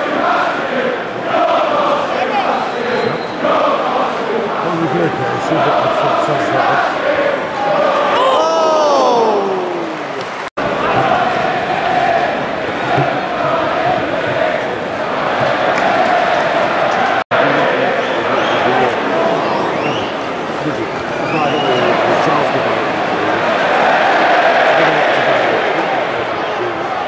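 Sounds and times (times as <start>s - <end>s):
stadium crowd singing and chanting: 0.0s - 8.4s, 9.0s - 27.0s.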